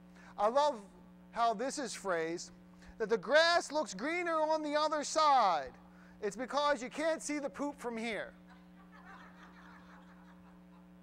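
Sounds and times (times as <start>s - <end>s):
low electrical hum: 0.0s - 11.0s
audience chuckling: 8.5s - 11.0s.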